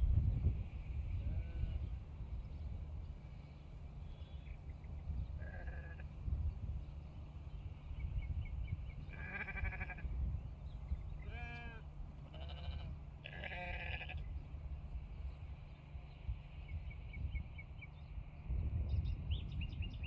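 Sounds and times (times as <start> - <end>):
steady low rumble: 0.0 - 20.0
sheep bleating: 1.2 - 1.9, 5.4 - 6.1, 9.1 - 10.1, 11.2 - 14.3.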